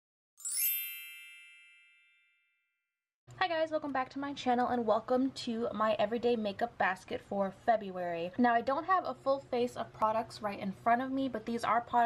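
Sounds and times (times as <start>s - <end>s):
bright chime ringing: 0.4s - 2.7s.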